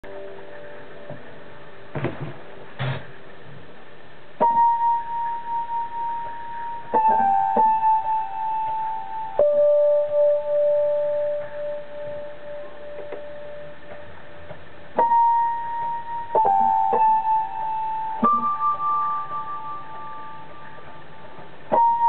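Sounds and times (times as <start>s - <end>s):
electric piano melody: 0.0s - 22.0s.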